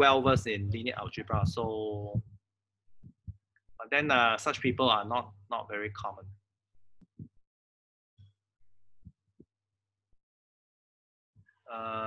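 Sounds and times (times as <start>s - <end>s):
faint low thumps: 0.0s - 3.8s.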